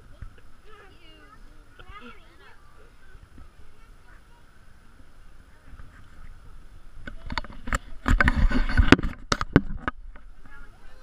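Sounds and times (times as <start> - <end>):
young children talking and calling: 0.0 - 8.9, 10.0 - 11.0
faint background chatter: 0.0 - 11.0.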